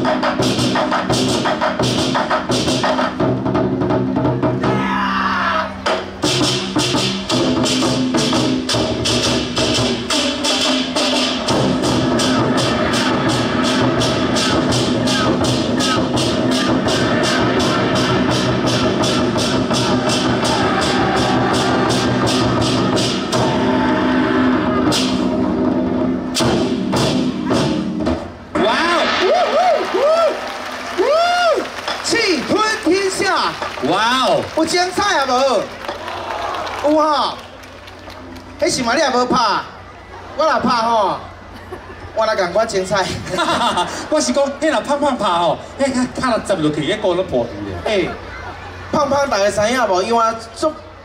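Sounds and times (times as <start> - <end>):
war drums beating: 0.0 - 5.0, 5.9 - 30.2.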